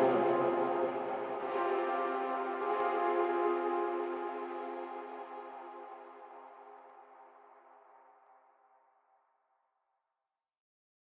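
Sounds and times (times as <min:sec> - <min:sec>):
held music chord: 0:00.0 - 0:05.8.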